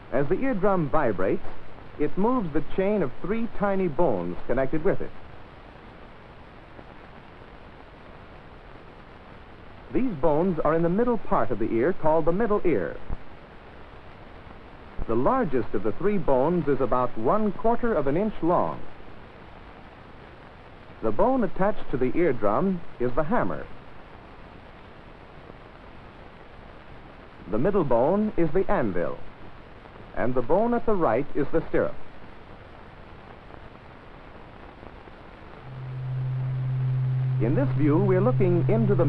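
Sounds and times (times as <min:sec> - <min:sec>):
film soundtrack hiss: 0:00.0 - 0:39.0.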